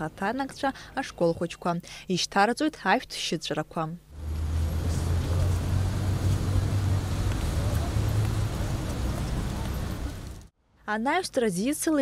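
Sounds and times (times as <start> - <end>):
road traffic rumble: 4.1 - 10.5.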